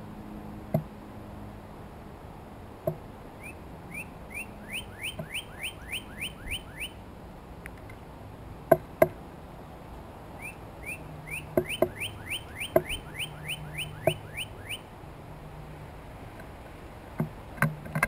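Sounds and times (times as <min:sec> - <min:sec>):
bird whistling rising notes: 0:03.4 - 0:07.0, 0:10.4 - 0:14.8
bird pecking on wooden feeder: 0:11.4 - 0:12.0, 0:12.7 - 0:13.0.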